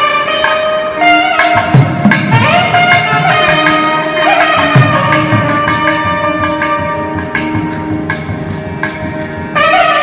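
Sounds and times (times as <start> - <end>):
double-reed pipes playing held notes: 0.0 - 10.0
drum strokes: 1.3 - 10.0.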